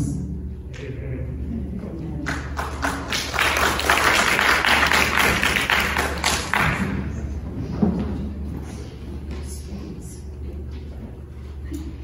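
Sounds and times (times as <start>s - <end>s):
crowd applauding: 2.2s - 7.2s.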